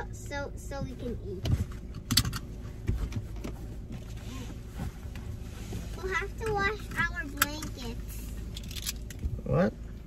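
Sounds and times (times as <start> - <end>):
low car cabin hum: 0.0 - 10.0
seat belt handling: 1.4 - 9.3.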